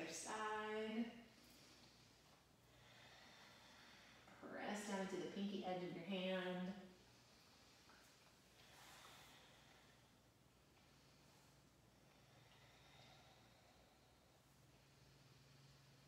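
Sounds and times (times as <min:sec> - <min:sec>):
faint low hum: 0:00.0 - 0:16.0.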